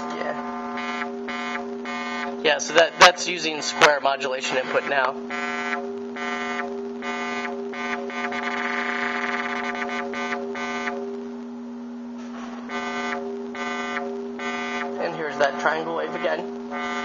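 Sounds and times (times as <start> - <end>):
filtered synthesizer square-wave tone: 0.0 - 12.0, 12.6 - 17.0.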